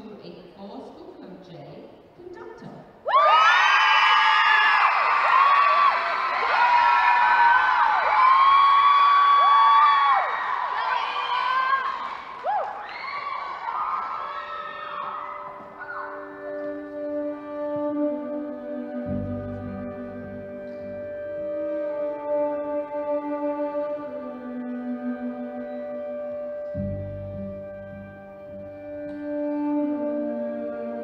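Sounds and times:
audience cheering and whooping: 0:03.0 - 0:16.9
music with held notes: 0:14.6 - 0:31.0.

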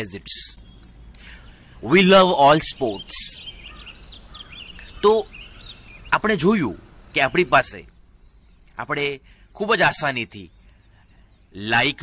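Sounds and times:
faint high chirping: 0:00.0 - 0:12.0
low steady hum: 0:00.0 - 0:12.0.

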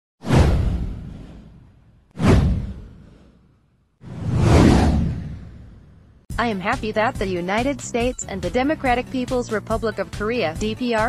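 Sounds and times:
whoosh with deep boom: 0:00.2 - 0:06.3.

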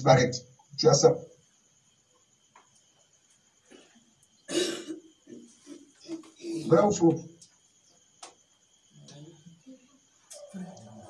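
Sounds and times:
person coughing: 0:04.5 - 0:05.1.

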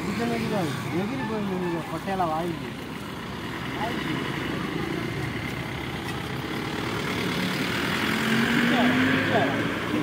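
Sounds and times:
bus driving past: 0:00.0 - 0:10.0
road traffic: 0:00.0 - 0:10.0.

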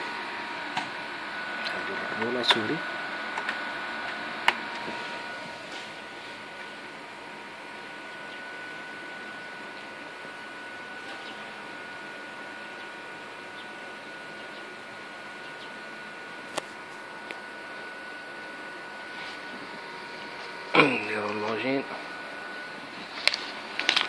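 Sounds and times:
computer fans whirring: 0:00.0 - 0:24.0
thin high whine: 0:00.0 - 0:24.0.

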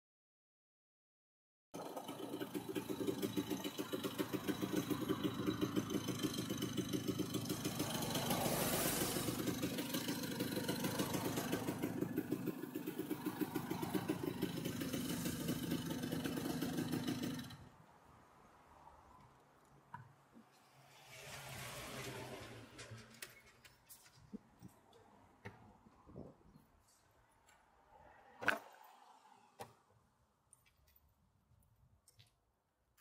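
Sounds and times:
scooter engine running: 0:01.8 - 0:17.7.

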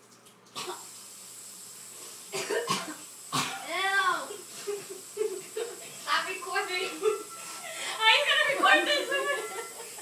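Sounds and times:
person coughing: 0:02.3 - 0:03.7.

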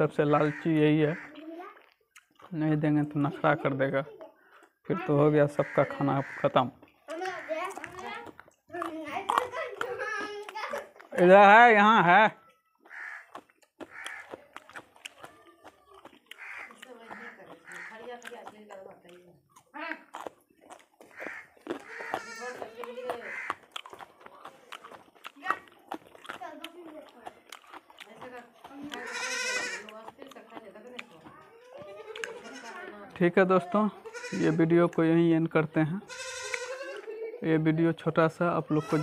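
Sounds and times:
crow cawing: 0:00.4 - 0:01.4, 0:05.6 - 0:06.6, 0:07.2 - 0:07.7, 0:12.8 - 0:14.4, 0:16.3 - 0:18.2, 0:21.1 - 0:23.7, 0:29.0 - 0:29.9
goat bleating: 0:21.1 - 0:23.6, 0:28.8 - 0:30.0, 0:31.5 - 0:33.0, 0:34.0 - 0:34.7, 0:36.0 - 0:37.2, 0:38.6 - 0:39.0.

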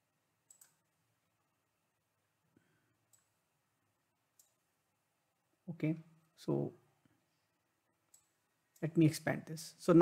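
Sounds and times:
computer mouse click: 0:00.4 - 0:00.9, 0:03.1 - 0:03.4, 0:04.3 - 0:04.6, 0:08.1 - 0:08.9.

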